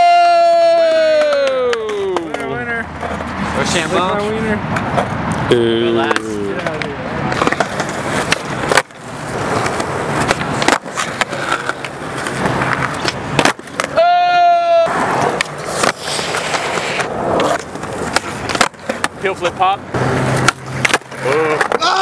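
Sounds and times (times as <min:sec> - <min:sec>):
skateboard wheels rolling on concrete: 0:00.0 - 0:22.0
skateboard clacks: 0:00.4 - 0:03.3, 0:06.1 - 0:22.0.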